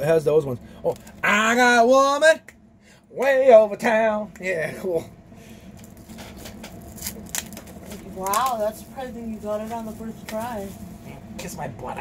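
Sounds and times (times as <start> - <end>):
cellophane crinkling and ripping: 5.8 - 10.9.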